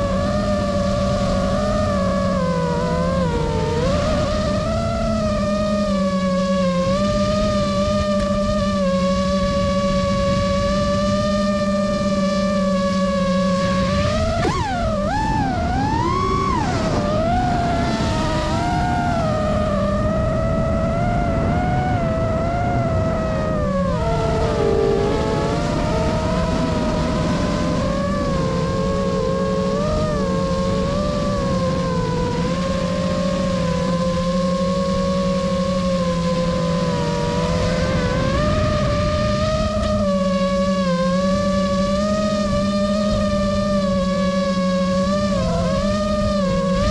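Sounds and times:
quadcopter motors whining: 0.0s - 46.9s.

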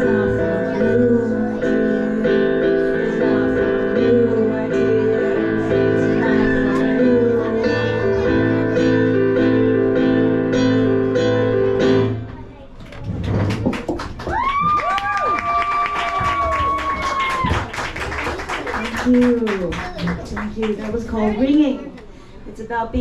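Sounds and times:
electric keyboard chords: 0.0s - 12.4s
audience applause: 13.5s - 21.3s
audience cheering: 14.2s - 20.1s.

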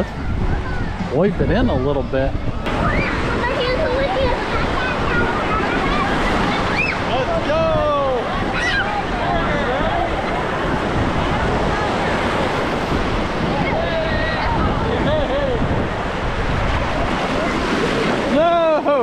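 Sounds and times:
wind on microphone: 0.0s - 18.6s
ocean surf breaking: 0.0s - 19.0s.

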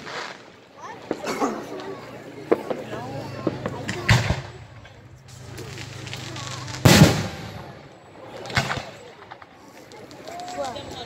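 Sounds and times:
fireworks booming with echo: 2.4s - 10.1s.

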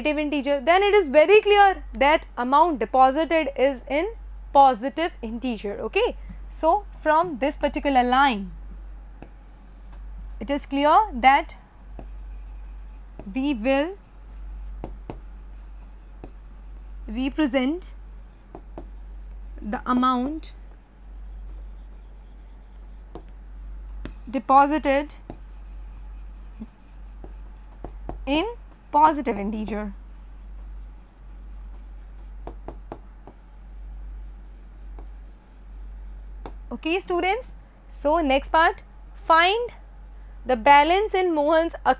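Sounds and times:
steady low hum: 0.0s - 41.9s
pen scratching on writing board: 9.2s - 10.0s, 12.0s - 23.4s, 24.0s - 36.6s.

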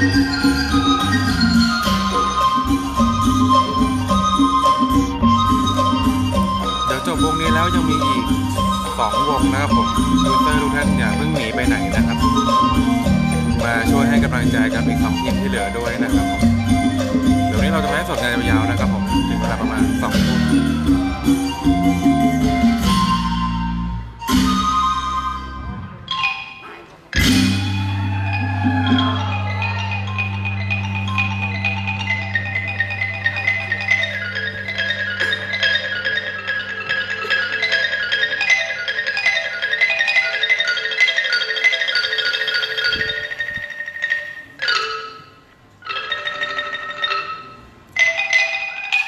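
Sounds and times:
band with wooden xylophones: 0.0s - 49.0s
folk ensemble playing live: 0.0s - 49.0s.

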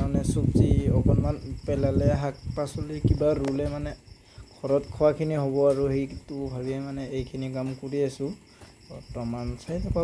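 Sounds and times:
high-pitched insect trill: 0.0s - 10.0s
person talking: 0.0s - 10.0s.

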